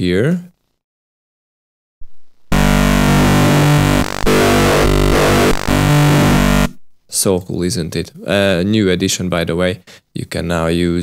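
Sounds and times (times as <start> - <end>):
synthesizer held note: 2.0 - 6.9.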